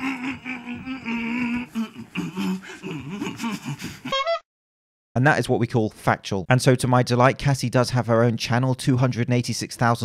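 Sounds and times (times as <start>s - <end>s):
person's voice wavering in pitch: 0.0s - 3.4s.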